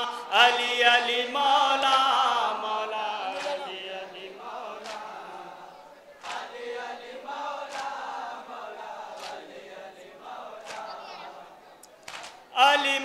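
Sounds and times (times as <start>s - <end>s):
man chanting into microphone: 0.0s - 5.5s, 12.5s - 13.0s.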